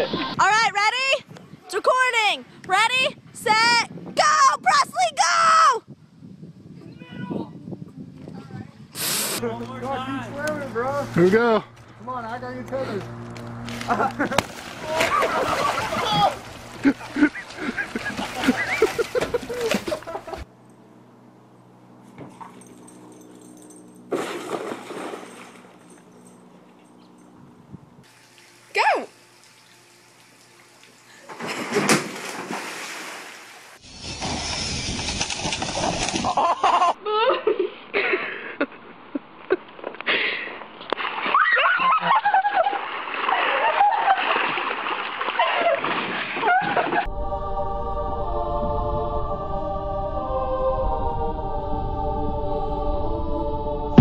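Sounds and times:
short burst of noise: 0:09.0 - 0:09.4
water splashing and sloshing: 0:13.4 - 0:20.5, 0:24.1 - 0:26.1, 0:28.1 - 0:36.4, 0:40.6 - 0:47.1
people shouting: 0:14.8 - 0:16.5
raised voices: 0:14.8 - 0:17.0.

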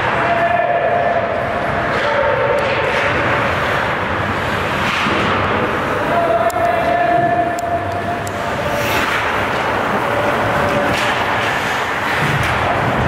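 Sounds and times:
din of voices and rink noise: 0:00.0 - 0:13.0
hockey sticks and puck clicking: 0:01.2 - 0:13.0.

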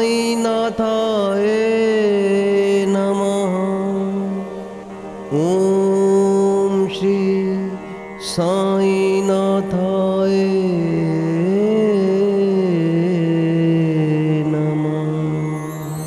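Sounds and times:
mantra chanting: 0:00.0 - 0:16.0.

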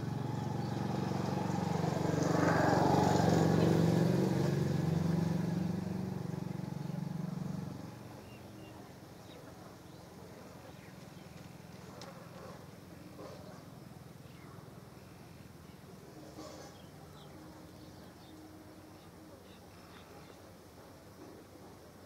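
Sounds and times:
vehicle engine passing by: 0:00.0 - 0:08.6.

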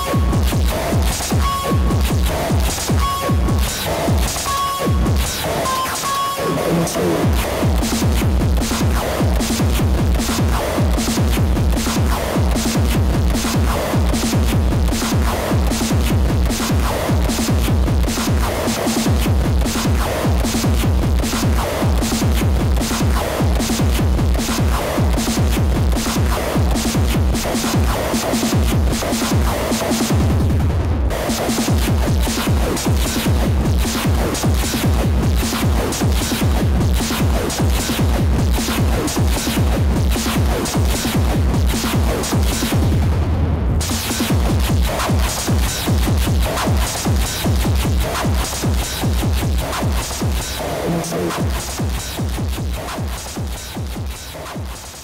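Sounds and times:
hardcore electronic dance music: 0:00.0 - 0:55.0
fast kick drum: 0:07.2 - 0:55.0.

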